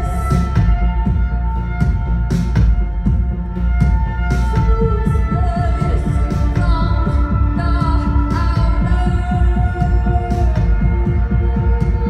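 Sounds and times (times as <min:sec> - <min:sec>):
bowed violin: 0:00.0 - 0:12.0
heavy bass: 0:00.0 - 0:12.0.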